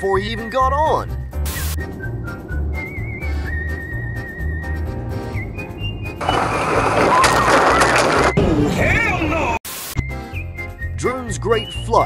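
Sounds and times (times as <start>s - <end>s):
music with whistled melody: 0.0s - 8.5s, 10.0s - 12.0s
windshield shattering: 6.2s - 8.5s.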